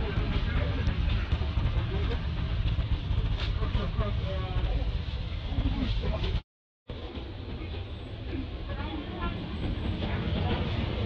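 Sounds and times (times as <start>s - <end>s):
low rumble: 0.0s - 7.5s.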